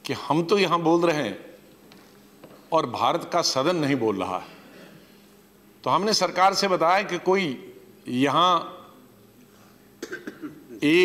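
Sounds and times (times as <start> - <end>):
man coughing: 4.6 - 5.0, 10.0 - 10.9
man speaking: 10.8 - 11.0.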